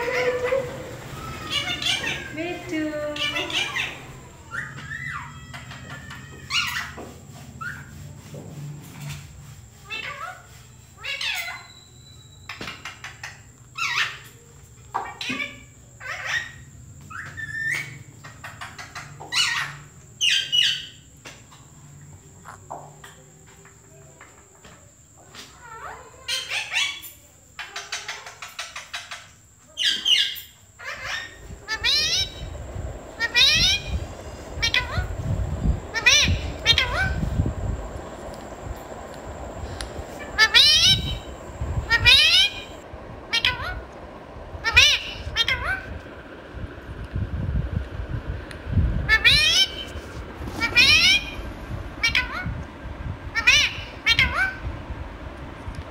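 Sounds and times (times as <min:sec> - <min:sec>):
parakeet calling: 0:00.0 - 0:08.0, 0:09.8 - 0:21.0, 0:29.8 - 0:44.0, 0:44.6 - 0:46.0, 0:49.0 - 0:52.6, 0:53.3 - 0:54.7.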